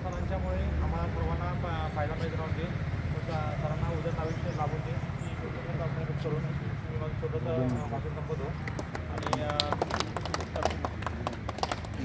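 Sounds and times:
people clapping: 0:08.5 - 0:12.0.

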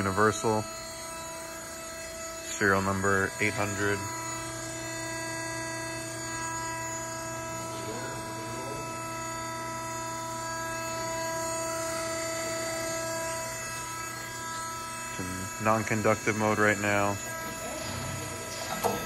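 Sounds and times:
hydraulic pump motor hum: 0:00.0 - 0:19.0.

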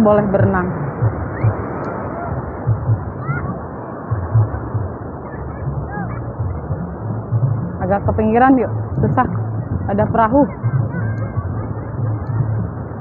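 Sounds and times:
distant voices calling: 0:00.0 - 0:13.0
low thuds: 0:00.0 - 0:13.0
surf washing up beach: 0:00.0 - 0:13.0.

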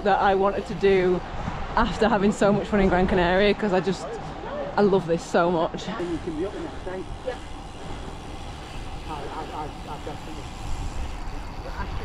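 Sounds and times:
wind rumble on microphone: 0:00.0 - 0:04.7.

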